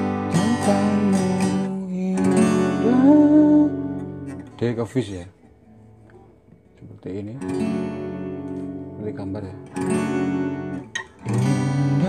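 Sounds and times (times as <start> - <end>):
man singing: 0.0 - 4.0, 11.3 - 12.0
acoustic guitar strumming: 0.0 - 12.0.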